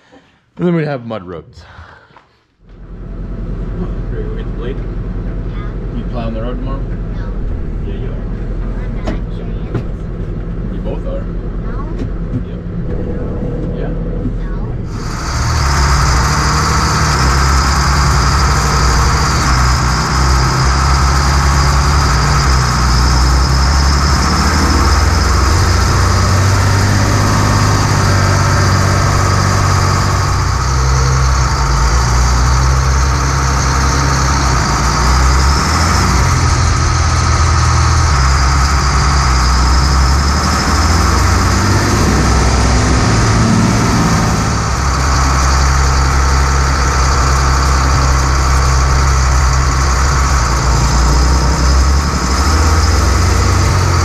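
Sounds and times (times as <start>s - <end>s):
tractor diesel engine running: 2.7s - 54.0s.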